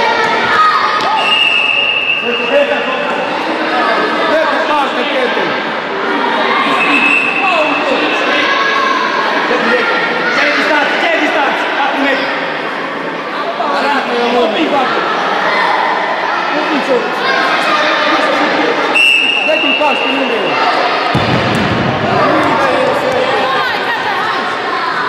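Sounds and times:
voices calling out in echoing hall: 0:00.0 - 0:25.0
referee's whistle: 0:01.1 - 0:02.6, 0:06.7 - 0:07.5, 0:18.9 - 0:20.5.

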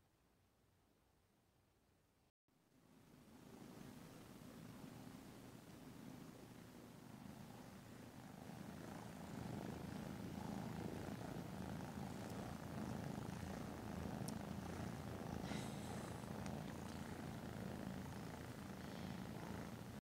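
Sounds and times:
cats purring: 0:03.4 - 0:20.0
faint clicks: 0:14.2 - 0:14.6.

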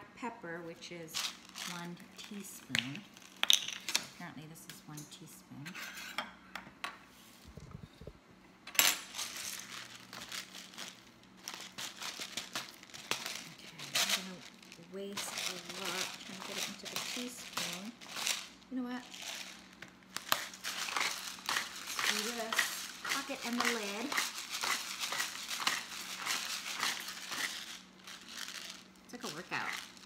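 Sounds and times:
pepper grinder crackling: 0:01.0 - 0:03.7, 0:09.0 - 0:30.0.

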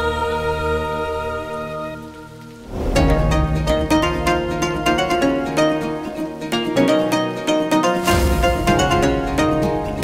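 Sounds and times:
sustained music chords: 0:02.3 - 0:10.0
rising rush of noise: 0:02.6 - 0:05.5.

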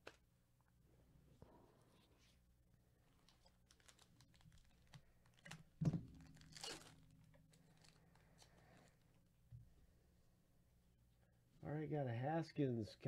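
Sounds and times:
foil wrapper crinkling: 0:03.2 - 0:09.0
wrapper tearing: 0:03.2 - 0:09.0.

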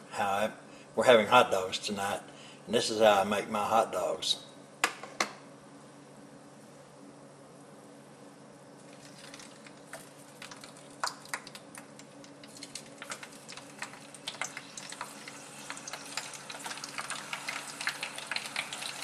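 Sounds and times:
hot dogs crackling in oil: 0:08.8 - 0:19.0.

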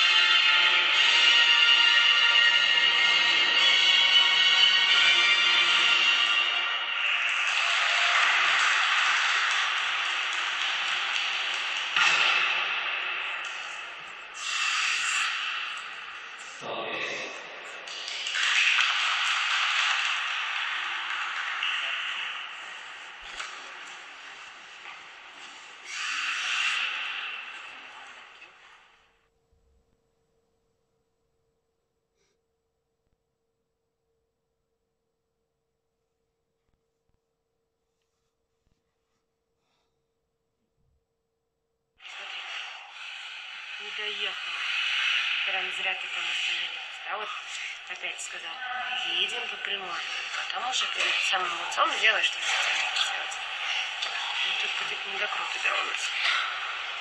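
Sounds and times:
woman speaking: 0:43.8 - 0:44.4, 0:45.4 - 0:56.3.

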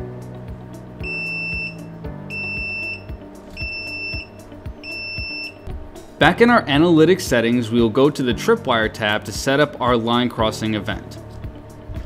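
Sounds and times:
background music with steady beat: 0:00.0 - 0:12.0
high buzzer beeps: 0:01.0 - 0:05.7.

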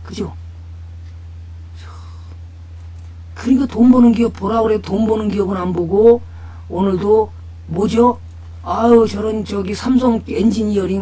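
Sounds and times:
steady low hum: 0:00.0 - 0:11.0
faint breath: 0:01.8 - 0:02.4, 0:06.2 - 0:06.7.

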